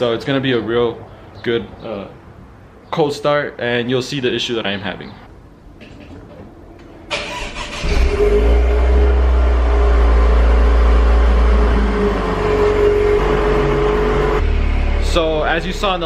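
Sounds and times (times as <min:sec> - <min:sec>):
car engine idling: 0:07.2 - 0:16.0.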